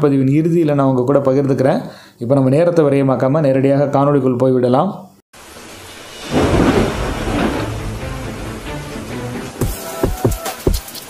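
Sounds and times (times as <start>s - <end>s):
rain hiss: 5.4s - 11.0s
thunderclap: 5.9s - 9.5s.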